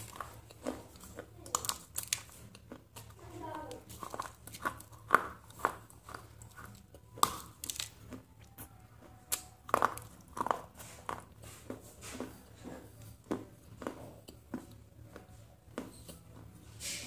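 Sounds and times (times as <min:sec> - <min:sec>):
crisp snack crunching: 0:00.0 - 0:11.2.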